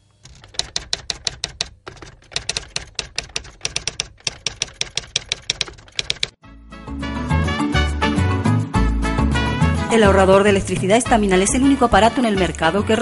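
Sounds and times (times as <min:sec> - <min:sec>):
typewriter key clacks: 0:00.3 - 0:06.4.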